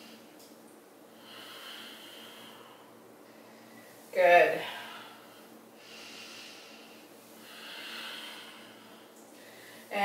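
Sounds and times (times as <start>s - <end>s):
woman breathing slowly: 1.1s - 10.0s.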